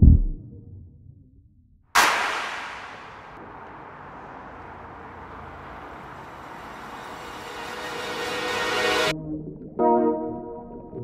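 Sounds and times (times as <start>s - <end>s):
loud crash with hissing tail: 2.0s - 5.4s
steady background noise: 2.0s - 9.1s.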